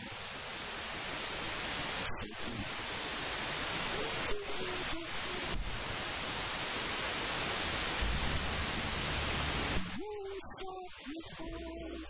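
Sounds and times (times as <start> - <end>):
static hiss: 0.0 - 12.0
faint voice: 3.9 - 5.6, 9.9 - 12.0.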